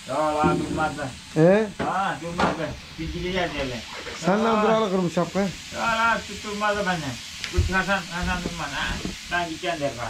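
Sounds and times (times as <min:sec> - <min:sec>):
frying sizzle: 0:00.0 - 0:10.0
voices talking: 0:00.0 - 0:10.0.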